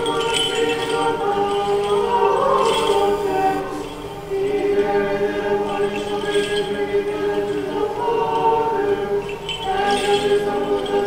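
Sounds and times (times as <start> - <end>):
choir chanting a cappella: 0.0 - 11.0.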